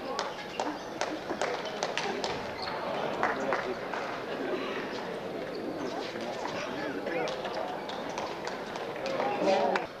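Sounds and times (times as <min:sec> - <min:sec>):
spectators talking: 0:00.0 - 0:10.0.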